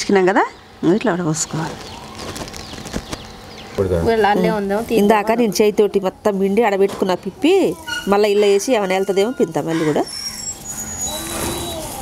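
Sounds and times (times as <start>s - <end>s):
woman talking: 0.0s - 1.8s, 4.1s - 10.3s
rising and falling call: 9.0s - 12.0s.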